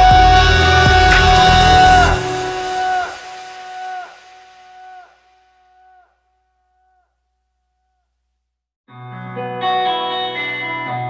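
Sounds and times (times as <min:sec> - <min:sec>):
held sung note: 0:00.0 - 0:05.2.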